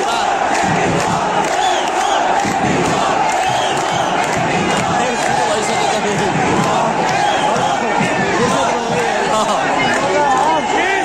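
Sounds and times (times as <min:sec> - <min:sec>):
stadium crowd shouting: 0:00.0 - 0:11.0.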